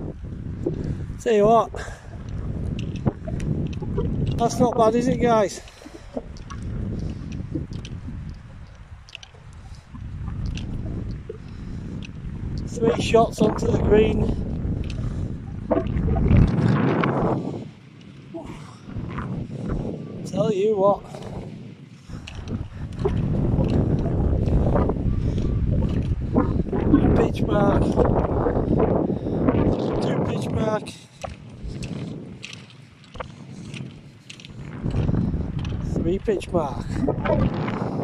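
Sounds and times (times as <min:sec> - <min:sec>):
wind buffeting microphone: 0:00.0 - 0:38.0
light clicks: 0:05.6 - 0:12.7.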